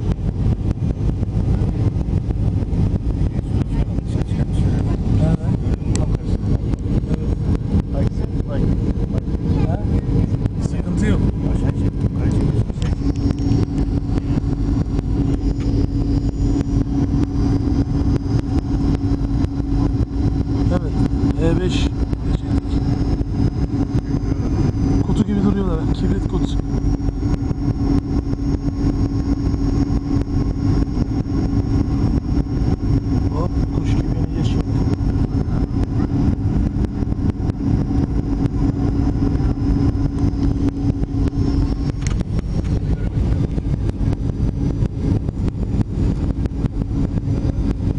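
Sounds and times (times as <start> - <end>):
airliner engines and airflow rumble: 0.0 - 47.9
faint high whine: 0.0 - 47.9.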